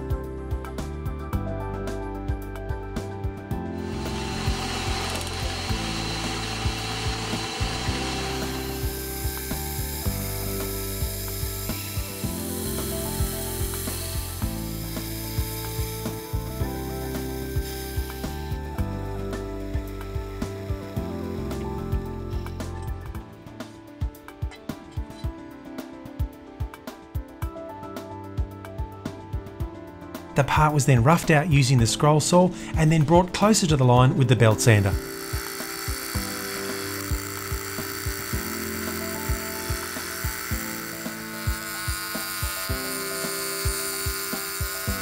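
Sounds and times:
drill press drilling steel: 0:03.8 - 0:23.2, 0:34.6 - 0:45.0.

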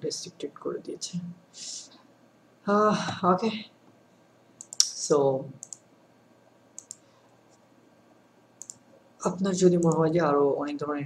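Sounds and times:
computer mouse clicks: 0:04.6 - 0:05.0, 0:05.6 - 0:05.8, 0:06.8 - 0:07.6, 0:08.6 - 0:08.8, 0:09.7 - 0:10.0.

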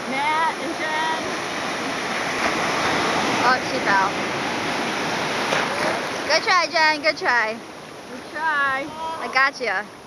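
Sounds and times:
small waves breaking: 0:00.0 - 0:10.0.

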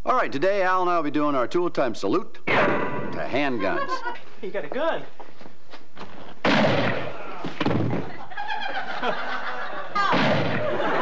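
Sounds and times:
loud thud: 0:02.5 - 0:03.3, 0:06.4 - 0:08.2, 0:10.1 - 0:11.0
noisy burst: 0:10.0 - 0:11.0.

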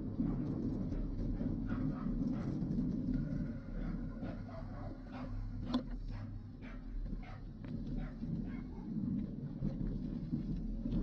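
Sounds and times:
wind rumble: 0:00.0 - 0:05.7, 0:06.4 - 0:11.0
dog barking: 0:01.7 - 0:02.5, 0:03.8 - 0:05.4, 0:06.1 - 0:08.9.

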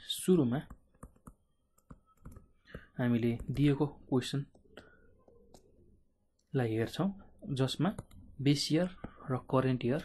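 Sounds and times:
stylus tapping on touchscreen: 0:00.6 - 0:03.8, 0:07.8 - 0:08.3.

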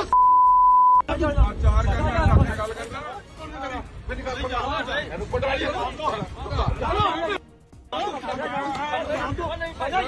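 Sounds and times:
censor bleep: 0:00.1 - 0:01.1.

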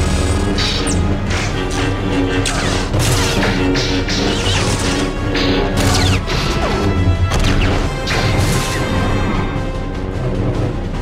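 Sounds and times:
lightsaber blades swinging and clashing: 0:00.0 - 0:06.9.

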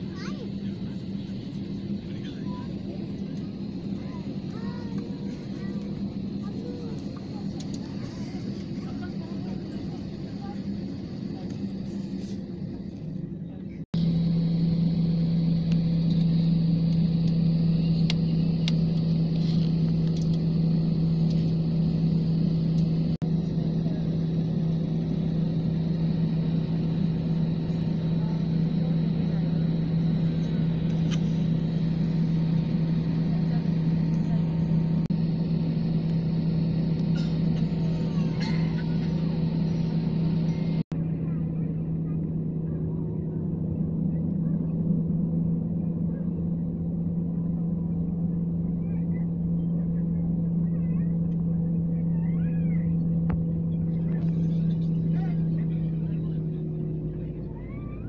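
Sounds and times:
airliner engine hum: 0:00.0 - 0:58.0.

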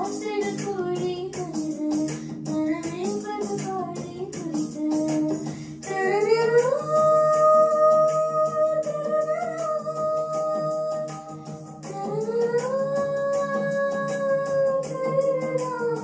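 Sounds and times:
backing music with ticking beat: 0:00.0 - 0:16.0
girl singing into a microphone: 0:00.0 - 0:16.0.

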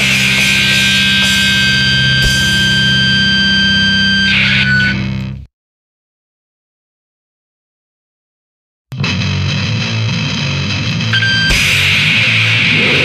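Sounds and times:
distorted electric guitar chord: 0:00.0 - 0:05.4, 0:09.0 - 0:13.0.

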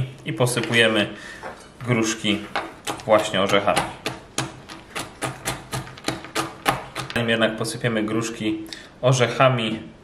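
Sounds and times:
knife chopping nuts on wooden board: 0:02.5 - 0:07.3.

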